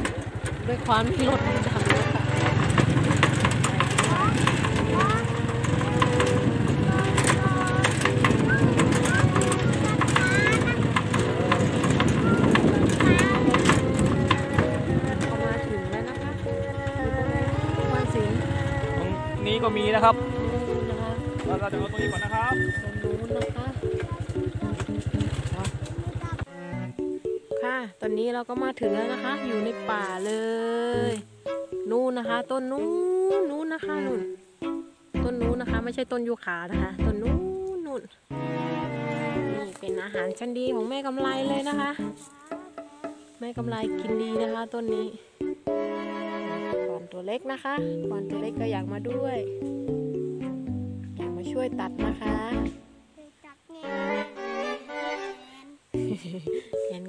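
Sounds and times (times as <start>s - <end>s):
vehicle engine rumble: 0.0s - 26.5s
rattling clicks: 1.8s - 15.4s.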